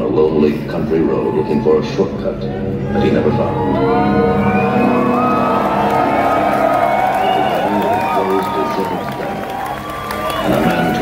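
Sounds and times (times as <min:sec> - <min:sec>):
crowd noise in a hall: 0:00.0 - 0:11.0
electronic sci-fi music: 0:00.8 - 0:07.9.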